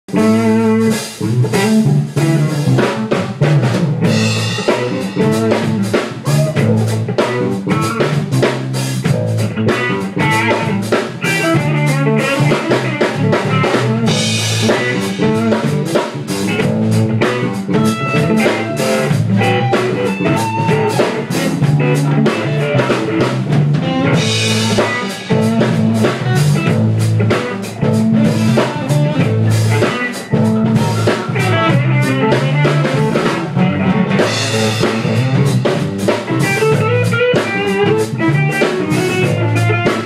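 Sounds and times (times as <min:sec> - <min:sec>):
drum kit groove: 0:00.1 - 0:40.0
electric guitars: 0:00.1 - 0:40.0.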